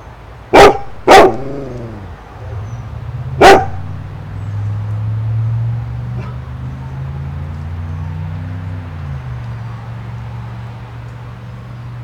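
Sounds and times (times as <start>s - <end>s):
dog barking: 0.5s - 2.0s, 3.4s - 4.1s.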